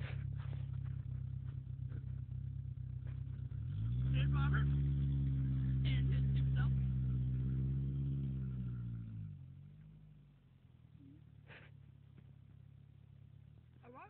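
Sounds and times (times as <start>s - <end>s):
pickup truck engine idling and revving: 0.0s - 14.0s.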